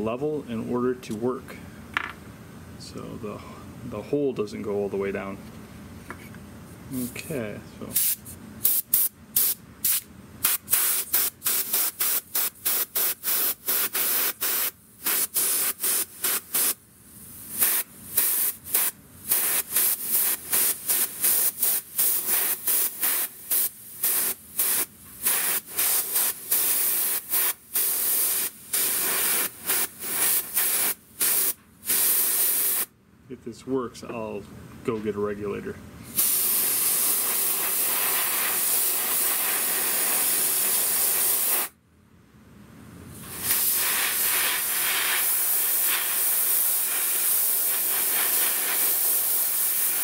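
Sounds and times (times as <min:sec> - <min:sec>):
airbrush spraying hiss bursts: 0:07.9 - 0:32.9, 0:36.1 - 0:41.8, 0:43.2 - 0:50.0.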